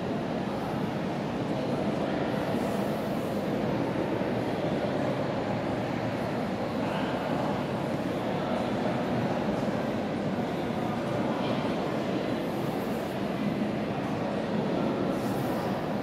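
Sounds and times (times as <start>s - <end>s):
crowd talking indistinctly: 0.0s - 16.0s.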